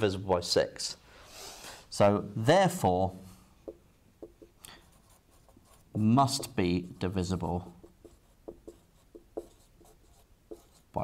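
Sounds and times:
marker pen writing on whiteboard: 3.6 - 11.0.

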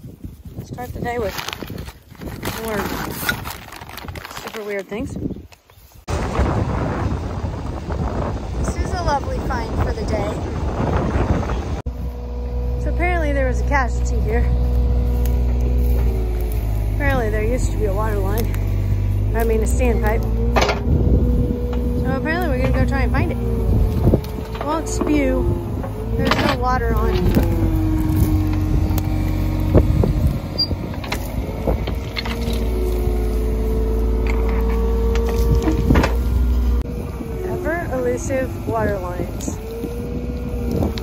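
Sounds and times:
excavator diesel engine running: 11.9 - 41.0.

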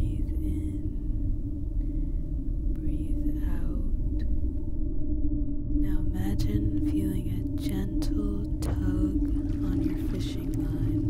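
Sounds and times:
deep rumble: 0.0 - 11.0
low hum: 0.0 - 11.0.

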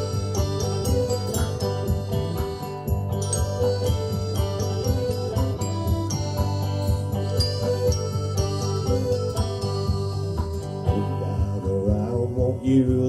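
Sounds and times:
tinkling high melody: 0.0 - 11.5
acoustic guitar: 0.0 - 13.0
banjo: 0.0 - 13.0.

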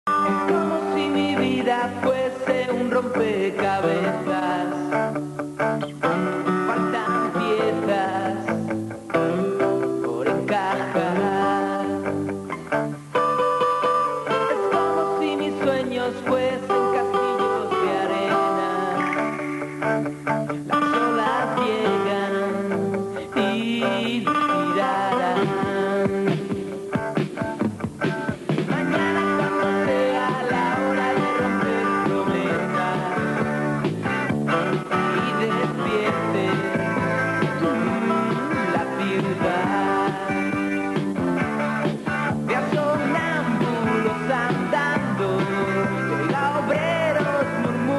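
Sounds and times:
guitar chords: 0.0 - 47.9
rock band playing: 0.1 - 47.9
drum beat: 25.6 - 44.8.

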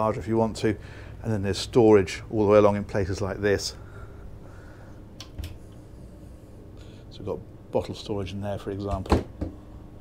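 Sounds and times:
sharp clicks: 5.2 - 5.6.

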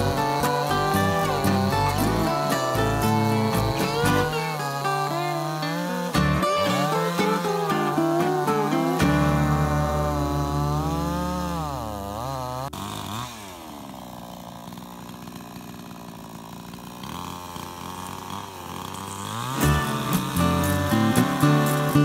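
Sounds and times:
strummed acoustic guitar: 0.0 - 11.7, 19.5 - 22.0
chainsaw cutting: 0.0 - 22.0.

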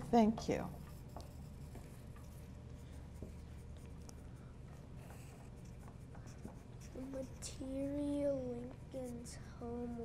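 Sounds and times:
low steady hum: 0.0 - 10.0
pencils scratching on paper: 0.2 - 10.0.

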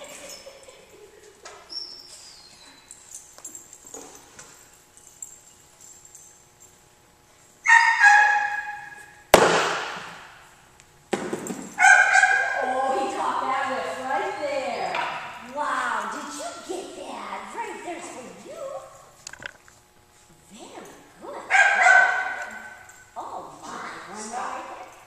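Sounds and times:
small dog yapping: 7.6 - 9.0, 11.8 - 12.6.

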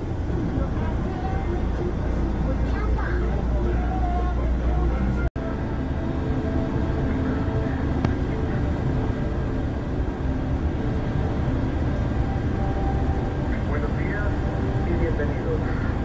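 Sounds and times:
coach engine and road rumble: 0.0 - 16.0
faint voices: 0.2 - 5.7.

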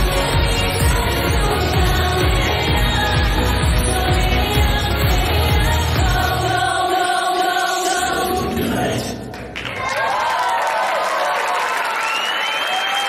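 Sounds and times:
dance music: 0.0 - 9.3
audience clapping: 9.3 - 13.0
audience cheering and whistling: 9.6 - 13.0.

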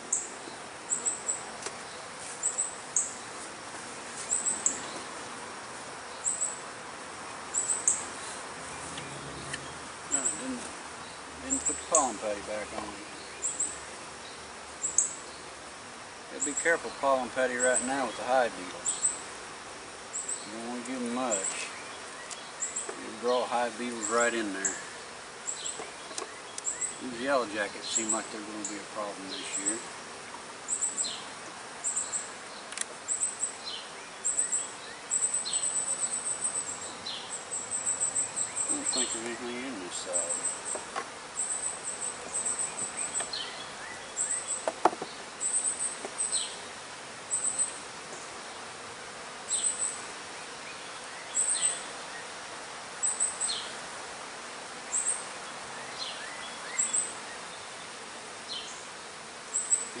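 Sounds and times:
steady outdoor hiss: 0.0 - 60.0.

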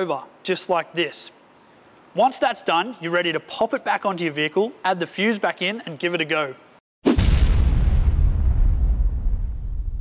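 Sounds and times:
deep cinematic boom: 7.1 - 10.0.

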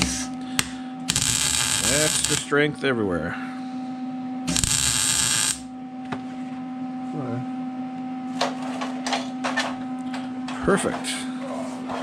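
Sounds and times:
welder crackling buzz: 0.0 - 2.7, 4.4 - 5.7
steady low hum: 0.0 - 12.0
welding tack bursts: 1.1 - 2.4, 4.5 - 5.6.

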